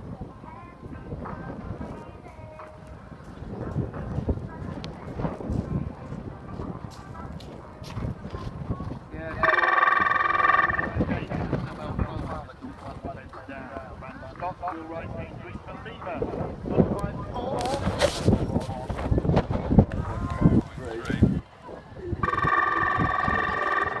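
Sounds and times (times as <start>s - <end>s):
quiet voices: 0.0s - 24.0s
hoofbeats: 2.3s - 16.2s
loud buzzer tone: 9.4s - 11.1s, 22.2s - 24.0s.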